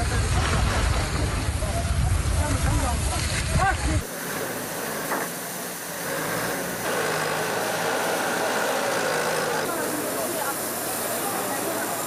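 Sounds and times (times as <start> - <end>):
fire hoses spraying water: 0.0 - 12.0
engine running: 4.0 - 12.0.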